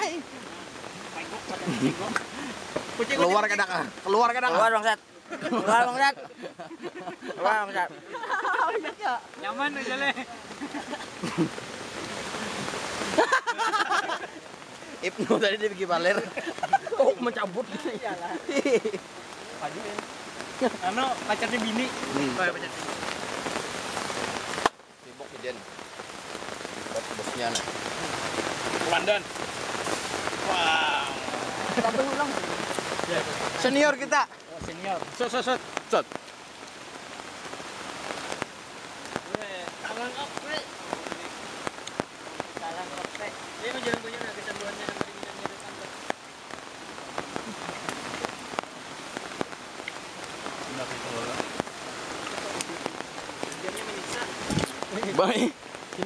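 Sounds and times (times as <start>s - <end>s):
rain falling on foliage: 0.0s - 56.0s.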